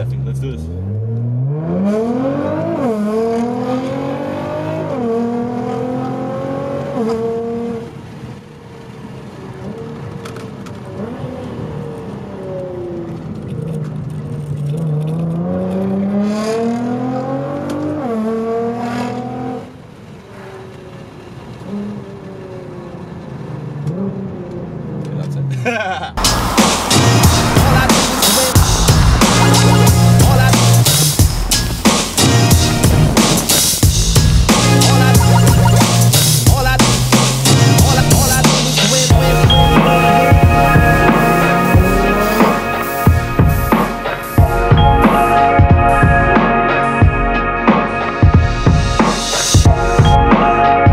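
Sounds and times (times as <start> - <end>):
car engine accelerating: 0.0 - 25.6, 26.2 - 47.0
loud music: 26.2 - 50.9.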